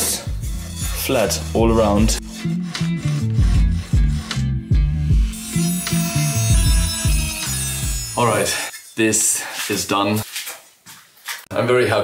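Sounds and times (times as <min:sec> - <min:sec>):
background music with bass line: 0:00.0 - 0:08.4
hand file rasping on metal: 0:00.0 - 0:08.8.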